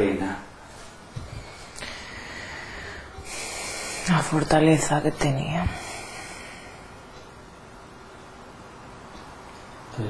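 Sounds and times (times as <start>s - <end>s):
woman breathing: 1.2s - 4.4s, 5.6s - 7.3s
woman speaking: 3.8s - 5.9s.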